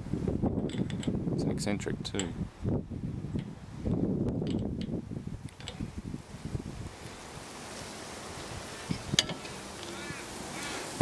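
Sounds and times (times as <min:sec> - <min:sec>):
wind buffeting microphone: 0:00.0 - 0:07.5, 0:08.2 - 0:09.5
metal parts clicking: 0:00.6 - 0:01.2, 0:04.4 - 0:04.9, 0:05.5 - 0:05.8, 0:09.2 - 0:09.5.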